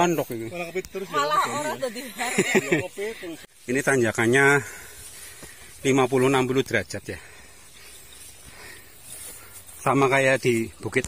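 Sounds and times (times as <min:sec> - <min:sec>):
tall grass rustling: 0:00.0 - 0:11.0
soft footsteps: 0:03.4 - 0:06.9, 0:07.8 - 0:11.0.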